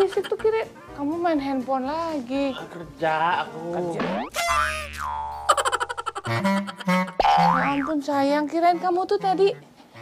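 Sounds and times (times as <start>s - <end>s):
springy cartoon boing: 4.1s - 5.7s, 6.3s - 8.1s.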